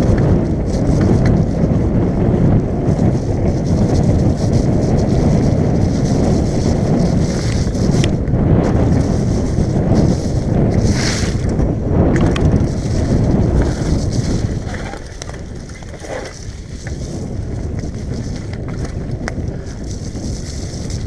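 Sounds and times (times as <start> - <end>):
wind buffeting microphone: 0.0 - 21.0
bike knocking over rough ground: 6.6 - 21.0.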